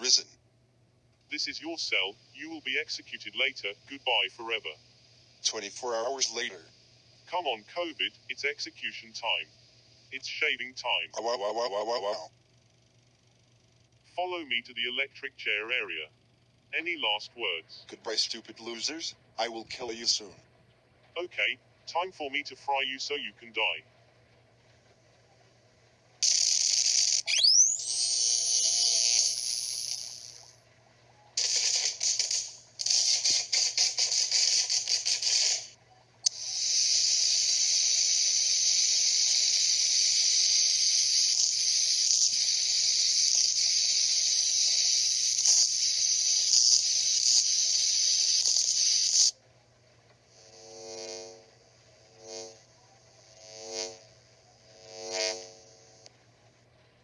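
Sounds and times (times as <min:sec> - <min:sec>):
crackling electric hiss: 0:01.3 - 0:12.3, 0:26.2 - 0:30.6, 0:31.4 - 0:49.4, 0:50.2 - 0:56.2.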